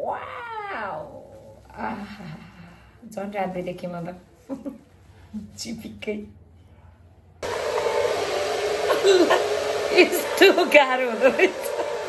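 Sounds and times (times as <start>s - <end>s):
hair dryer blowing: 7.4s - 12.0s.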